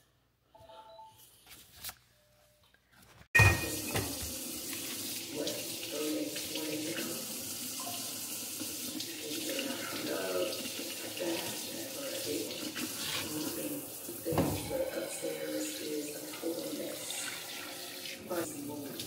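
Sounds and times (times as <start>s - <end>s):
faucet water splashing into pan: 3.4s - 19.0s.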